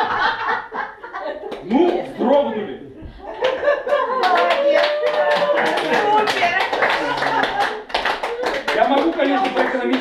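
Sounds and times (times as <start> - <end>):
people applauding: 3.8 - 10.0.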